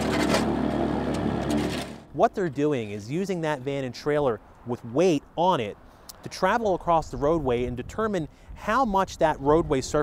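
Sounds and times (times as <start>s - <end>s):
broom and shovel scraping asphalt: 0.0s - 2.1s.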